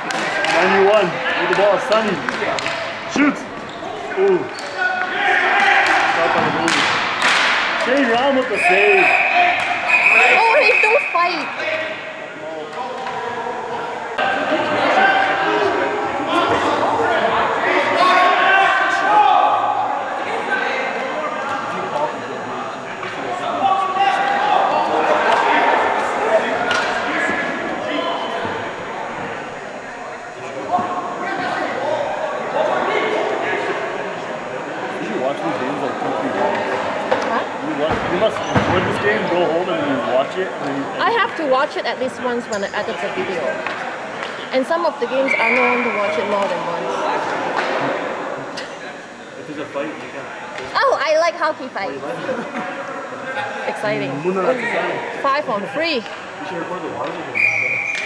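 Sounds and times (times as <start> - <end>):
echoing voices calling: 8.4 - 12.4.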